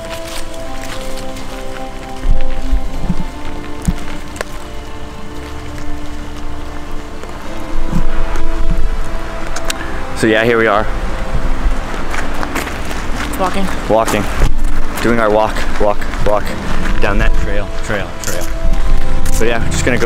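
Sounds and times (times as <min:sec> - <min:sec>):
background music with held notes: 0:00.0 - 0:20.0.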